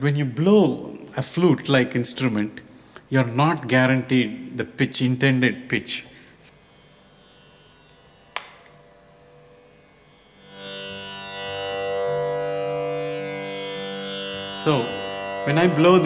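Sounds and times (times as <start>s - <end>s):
sustained instrument tone: 6.5s - 16.0s
sharp click: 8.3s - 8.8s.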